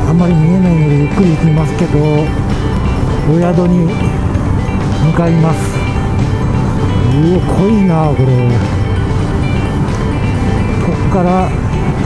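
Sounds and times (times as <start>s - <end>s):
background music: 0.0s - 12.0s
motorcycle engine cruising: 0.0s - 12.0s
wind and road noise: 0.0s - 12.0s.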